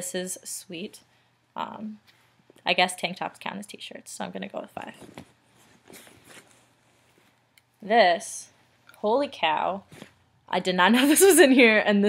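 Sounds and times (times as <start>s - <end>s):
fabric rustling: 4.8s - 7.5s, 9.8s - 10.2s.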